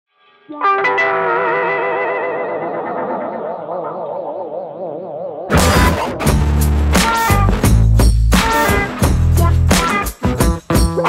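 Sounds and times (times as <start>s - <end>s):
electric guitar chord with wavering effect: 0.4s - 3.5s.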